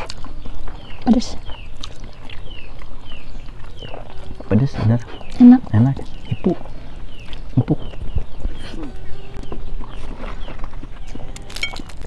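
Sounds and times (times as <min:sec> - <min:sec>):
bird chirps: 0:00.0 - 0:11.9
chewing and lip smacks: 0:00.0 - 0:12.0
people murmuring: 0:02.5 - 0:11.6.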